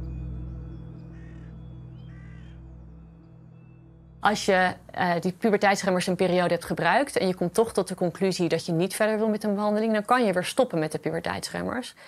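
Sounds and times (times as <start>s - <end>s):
low droning background music: 0.0s - 7.1s
bird calling: 1.1s - 2.6s.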